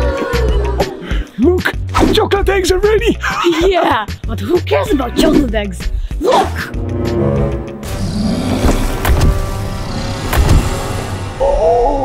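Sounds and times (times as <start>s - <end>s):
background music: 0.0s - 12.0s
heavy dinosaur stomping thuds: 8.6s - 9.6s, 10.2s - 11.0s.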